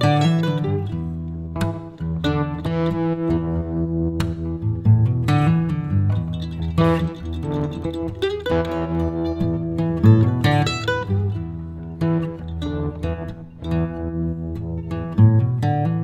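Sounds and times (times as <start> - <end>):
acoustic guitar music: 0.0 - 16.0.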